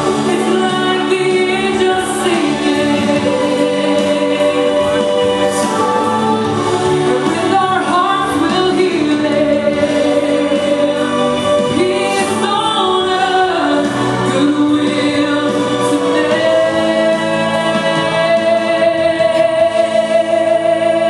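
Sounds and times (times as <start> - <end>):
girls singing together: 0.0 - 21.0.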